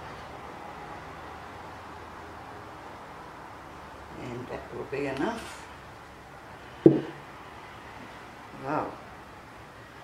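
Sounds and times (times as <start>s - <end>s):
jug set down on table: 6.9s - 7.2s.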